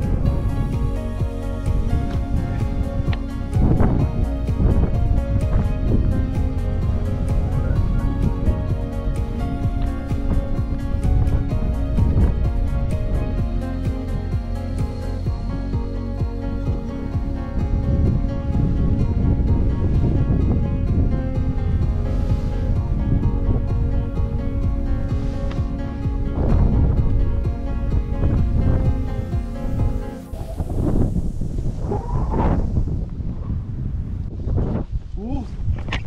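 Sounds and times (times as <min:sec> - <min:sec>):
instrumental background music: 0:00.0 - 0:31.9
wind on microphone: 0:00.0 - 0:36.0
snowboard hissing through powder snow: 0:22.0 - 0:23.1, 0:29.0 - 0:33.0.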